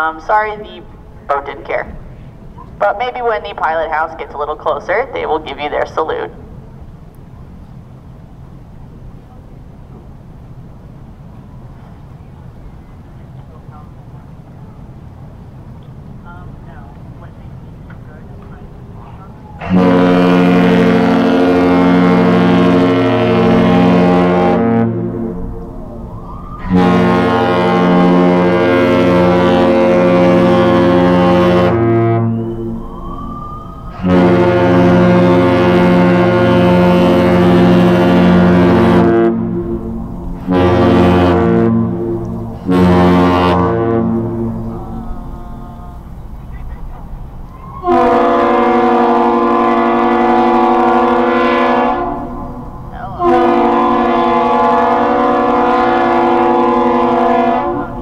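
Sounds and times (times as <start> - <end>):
deep ship horn blasts: 0.0 - 8.0, 13.0 - 58.0
higher-pitched bridge horn: 19.2 - 46.2, 47.5 - 58.0.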